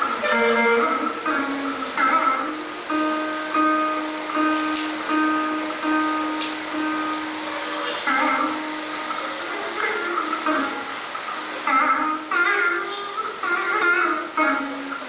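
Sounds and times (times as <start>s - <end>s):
plucked veena notes: 0.0s - 15.0s.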